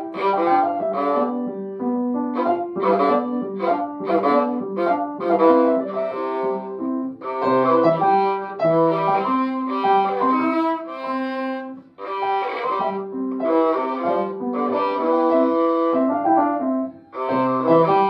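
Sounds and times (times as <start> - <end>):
bowed violin melody: 0.0 - 18.0
piano accompaniment: 0.0 - 18.0.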